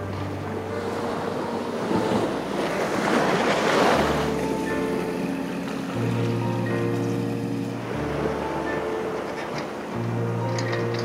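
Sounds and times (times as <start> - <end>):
faint music: 0.0 - 11.0
rushing wind and surf noise: 0.0 - 11.0.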